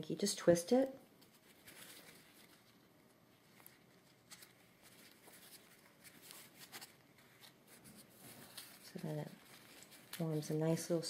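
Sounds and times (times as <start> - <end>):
faint rustles and ticks of wire: 0.0 - 11.0.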